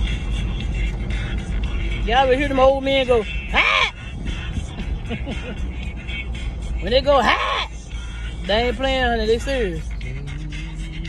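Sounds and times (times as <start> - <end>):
music from car sound system: 0.0 - 7.1, 7.7 - 11.0.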